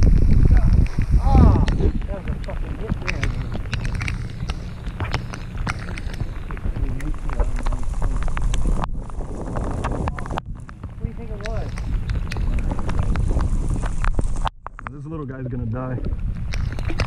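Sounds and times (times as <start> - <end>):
steady rain: 0.0 - 14.5
raindrops ticking close by: 0.0 - 17.0
wind rumbling on microphone: 0.0 - 17.0.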